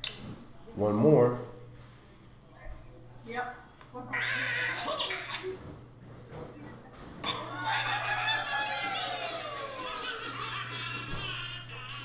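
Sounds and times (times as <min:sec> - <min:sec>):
cartoon bird and pig squawks: 0:04.1 - 0:05.4.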